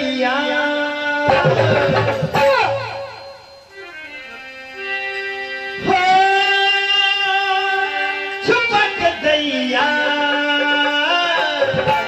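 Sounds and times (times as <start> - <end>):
harmonium chord: 0.0 - 12.0.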